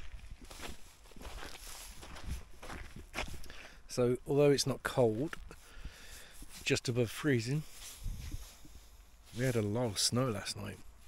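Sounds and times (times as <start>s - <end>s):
footsteps on snow: 0.0s - 11.0s.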